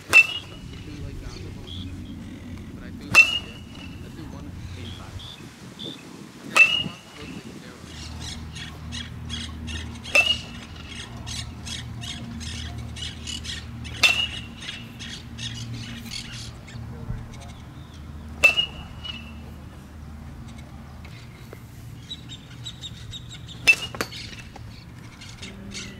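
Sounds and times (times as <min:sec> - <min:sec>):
metal bat pinging balls: 0:00.0 - 0:04.1, 0:06.5 - 0:07.4, 0:08.1 - 0:19.5, 0:23.2 - 0:25.9
birds chirping: 0:00.0 - 0:25.9.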